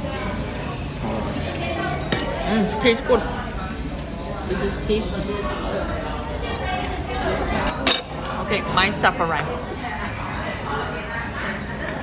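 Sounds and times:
cutlery clinking on tableware: 0:00.0 - 0:02.7, 0:03.6 - 0:08.9, 0:09.8 - 0:12.0
murmur of voices: 0:00.0 - 0:12.0.

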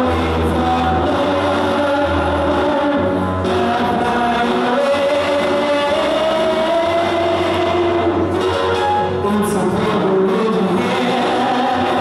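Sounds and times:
backing music: 0:00.0 - 0:12.0.

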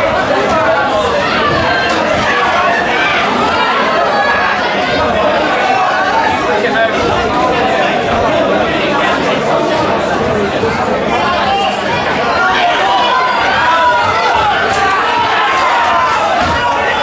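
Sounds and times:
crowd chattering and calling out: 0:00.0 - 0:17.0.

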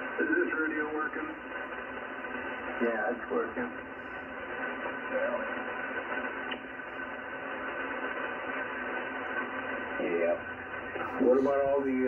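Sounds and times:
faint voice over radio: 0:00.0 - 0:01.5, 0:04.9 - 0:05.7, 0:11.0 - 0:12.0
faint steady tones: 0:00.0 - 0:12.0
radio speaker hissing: 0:00.0 - 0:12.0.

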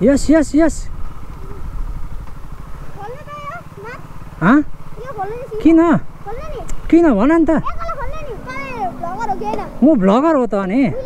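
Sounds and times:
motorcycle engine idling: 0:00.0 - 0:11.0
child speaking: 0:01.4 - 0:01.7, 0:02.9 - 0:04.1, 0:05.0 - 0:09.8, 0:10.8 - 0:11.0.

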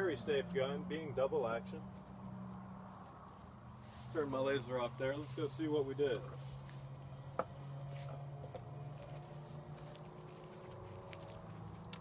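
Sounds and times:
faint footsteps: 0:01.8 - 0:12.0.

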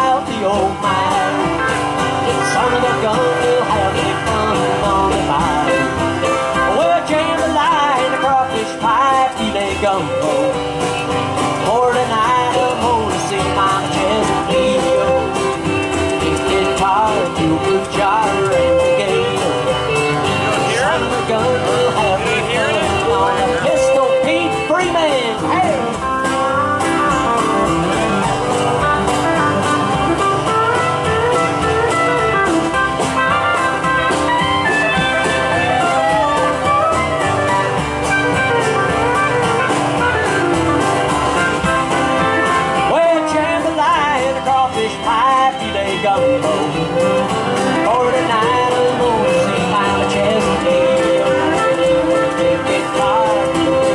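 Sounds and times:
acoustic guitar: 0:00.0 - 0:53.9
drums: 0:00.0 - 0:53.9
pedal steel guitar sliding lead: 0:00.0 - 0:53.9
upright bass: 0:00.0 - 0:53.9.

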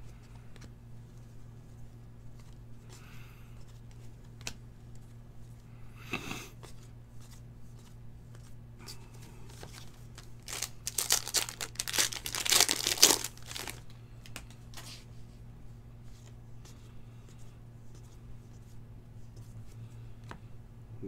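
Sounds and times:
card handling clicks and rustles: 0:06.6 - 0:15.0
wrapper tearing and crinkling: 0:09.7 - 0:13.8.

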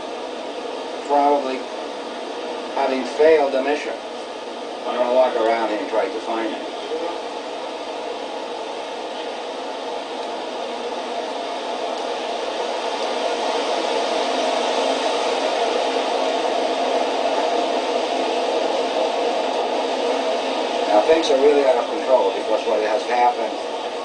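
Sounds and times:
television speaker hiss: 0:00.0 - 0:24.0.

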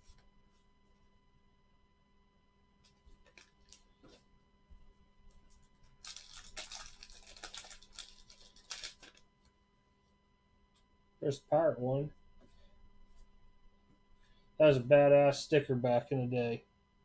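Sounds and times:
wax paper wrapper crinkling and tearing: 0:05.8 - 0:09.3.

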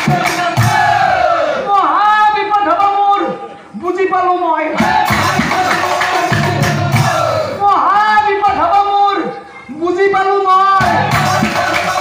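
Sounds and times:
chorus of voices: 0:00.0 - 0:03.8, 0:04.7 - 0:09.7, 0:10.4 - 0:12.0.

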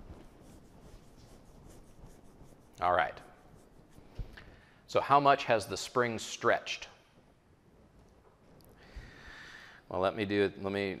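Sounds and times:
faint scratching and rustling: 0:00.0 - 0:08.9.

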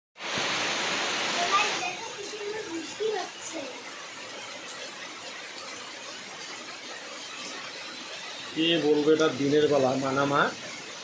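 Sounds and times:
heavy rain on trees: 0:00.2 - 0:11.0.

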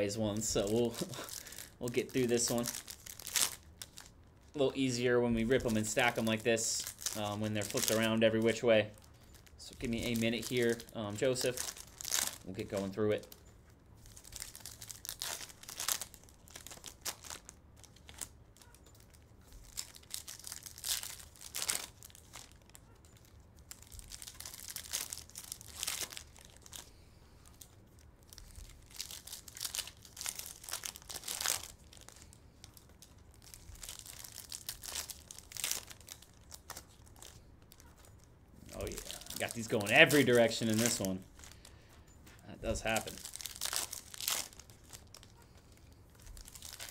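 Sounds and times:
foil wrappers tearing and crinkling: 0:00.0 - 0:13.4, 0:14.0 - 0:41.7, 0:42.6 - 0:46.9.

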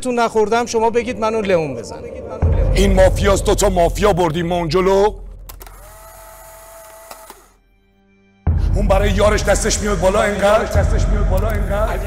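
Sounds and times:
camera click: 0:05.5 - 0:07.5
steady electric whir: 0:05.5 - 0:07.6.

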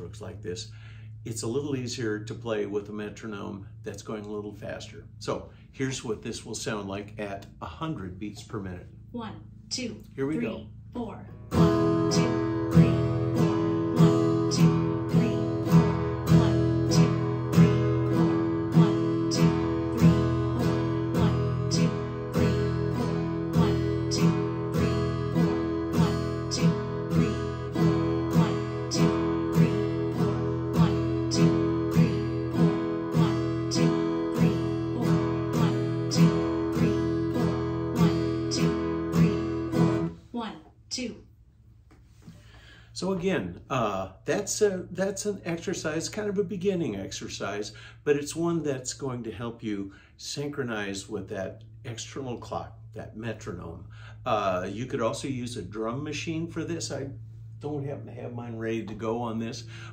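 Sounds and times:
acoustic guitar strumming: 0:00.0 - 0:40.5, 0:44.3 - 0:59.9.

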